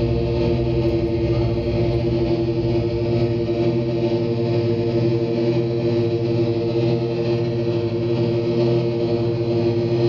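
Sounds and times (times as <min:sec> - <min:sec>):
electric guitar drone: 0:00.0 - 0:10.0.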